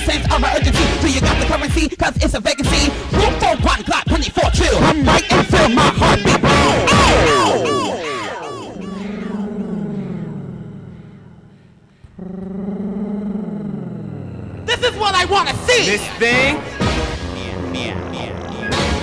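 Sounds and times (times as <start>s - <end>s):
house music beat: 0.0s - 9.6s
pitch-bending vocal samples: 3.2s - 19.0s
held falling tone: 6.2s - 11.7s.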